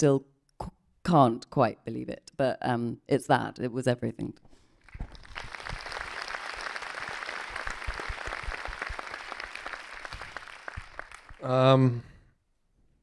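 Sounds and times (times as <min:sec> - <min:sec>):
audience applauding: 0:04.8 - 0:11.6.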